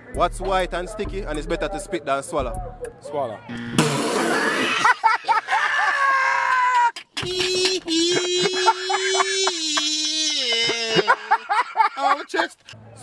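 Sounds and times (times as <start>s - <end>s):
person wailing: 5.8s - 11.5s.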